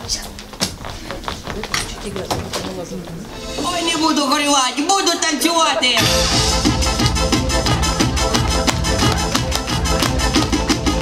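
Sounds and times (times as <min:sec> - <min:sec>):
footsteps on wooden stage floor: 0:00.0 - 0:04.2, 0:06.9 - 0:11.0.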